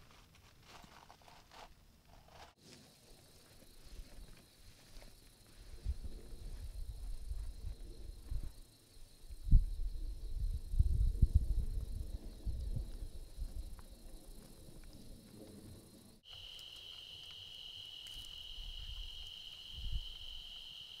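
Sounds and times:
cricket trilling: 3.1s - 21.0s
wind rumbling on microphone: 5.6s - 16.2s, 18.4s - 20.6s
campfire crackles: 11.8s - 21.0s.

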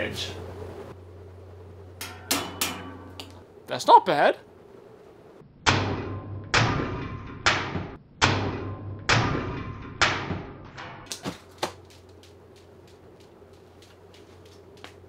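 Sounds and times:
ceiling fan humming: 0.0s - 15.0s
fan blades chopping watermelon: 2.0s - 3.4s, 5.7s - 15.0s.

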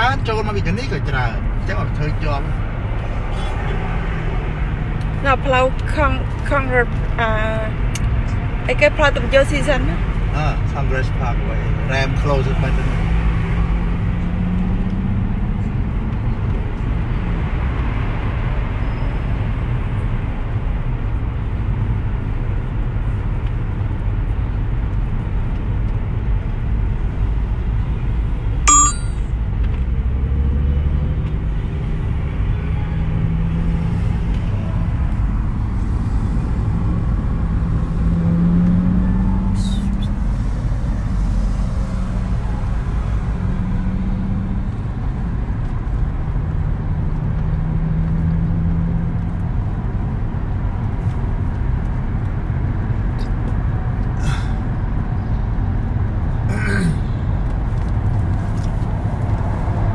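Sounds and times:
car cabin road rumble: 29.3s - 59.9s.

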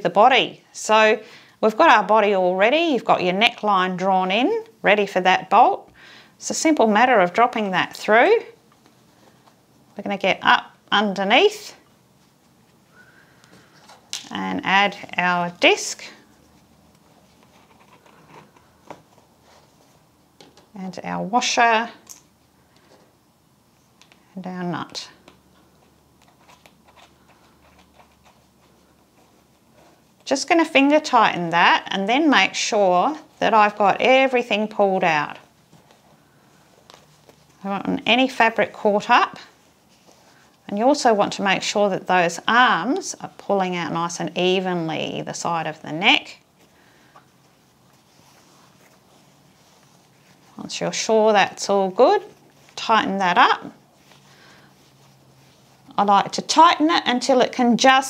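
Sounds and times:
fabric rustling: 6.4s - 58.0s.

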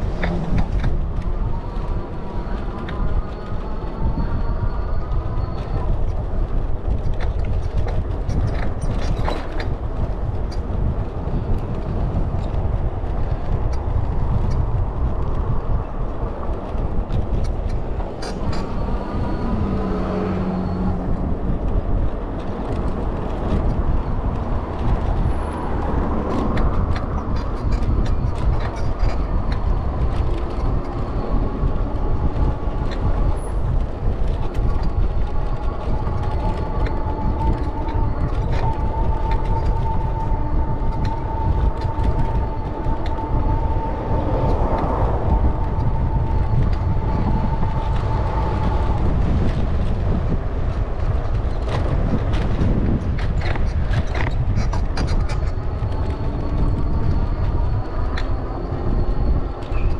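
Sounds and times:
tyres rolling on asphalt: 0.0s - 59.9s
wind rushing over microphone: 0.0s - 59.9s.

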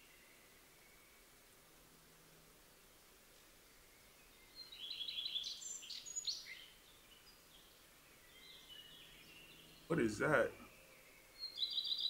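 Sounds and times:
birds chirping: 2.8s - 12.0s.

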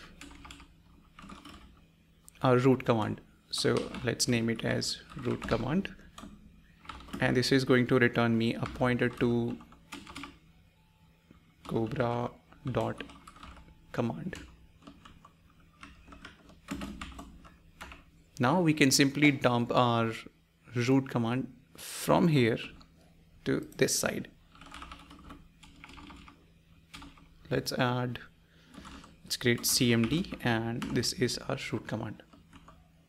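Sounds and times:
computer keyboard typing: 0.0s - 1.7s, 3.6s - 7.6s, 8.5s - 10.4s, 12.7s - 18.0s, 24.5s - 27.4s, 28.7s - 31.4s, 32.2s - 32.8s.

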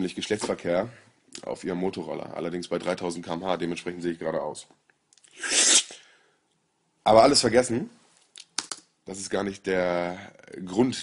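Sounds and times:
man sneezing: 5.4s - 6.0s.

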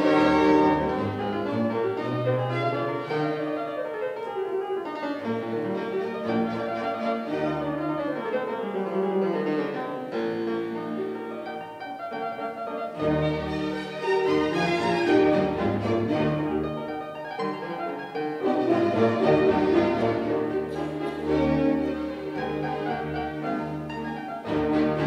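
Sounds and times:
string orchestra: 0.0s - 3.6s, 5.2s - 11.5s, 12.8s - 25.0s
fortepiano playing quick runs: 0.0s - 25.0s.

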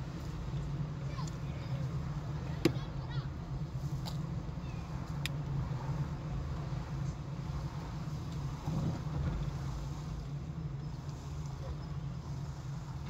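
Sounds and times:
car engine and road noise: 0.0s - 13.0s.

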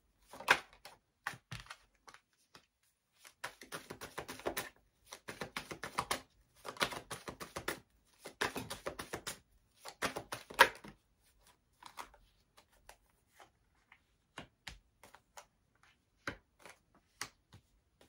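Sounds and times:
cards tapped and laid down: 0.3s - 11.0s, 14.0s - 18.0s
cards being shuffled: 0.3s - 18.0s.

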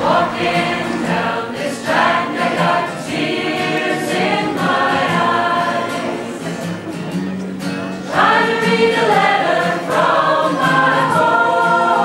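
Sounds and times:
choir singing: 0.0s - 6.9s, 8.0s - 12.0s.

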